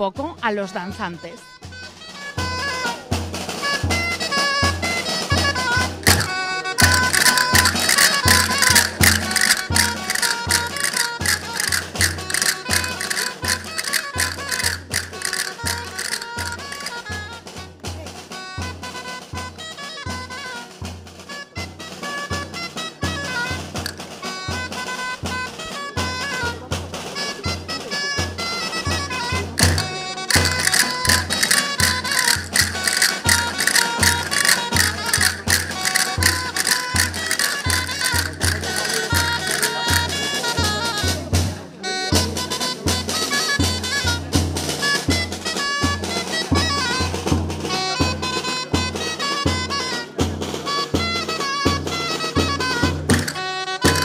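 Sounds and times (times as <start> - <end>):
live band playing folk dance music: 0.0 - 54.0
dense clicking: 6.0 - 17.0, 29.6 - 40.1.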